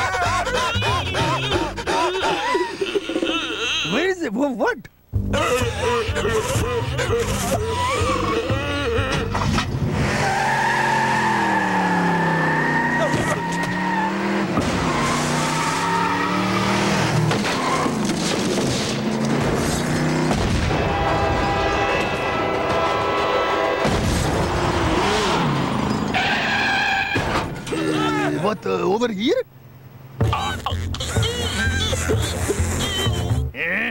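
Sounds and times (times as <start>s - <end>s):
music: 5.1s - 9.4s, 30.2s - 33.6s
tires squealing: 6.4s - 28.6s.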